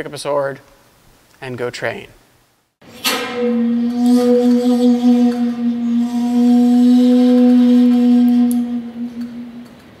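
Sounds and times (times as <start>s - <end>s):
bamboo flute long low note: 3.1s - 9.9s.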